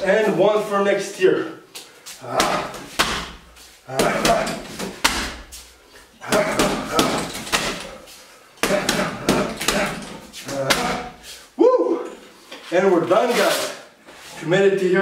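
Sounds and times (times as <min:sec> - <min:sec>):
punches thumping heavy bag: 0:02.2 - 0:05.5, 0:06.2 - 0:08.0, 0:08.6 - 0:11.2.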